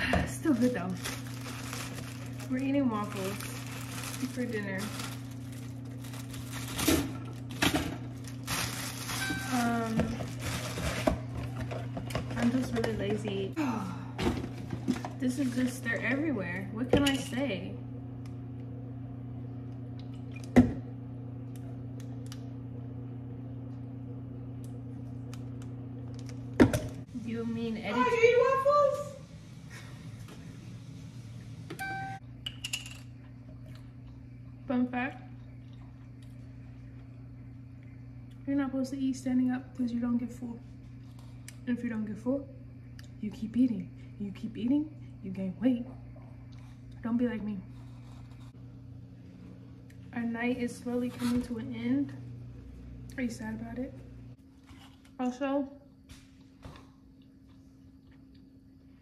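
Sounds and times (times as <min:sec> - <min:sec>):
steady low hum: 0:00.0 - 0:59.0
plastic bag crinkling: 0:00.3 - 0:11.1
short electronic beeps: 0:31.8 - 0:32.2.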